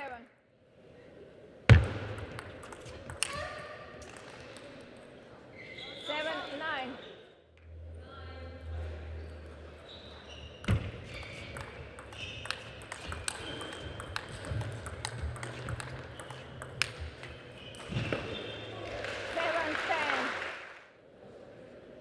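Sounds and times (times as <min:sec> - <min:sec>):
crowd noise: 0:07.8 - 0:22.0
table tennis ball clicks: 0:10.7 - 0:17.5.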